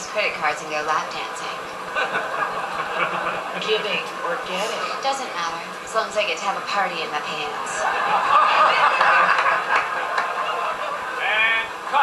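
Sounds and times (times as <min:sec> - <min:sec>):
group of people laughing: 0:01.8 - 0:04.0, 0:07.5 - 0:12.0.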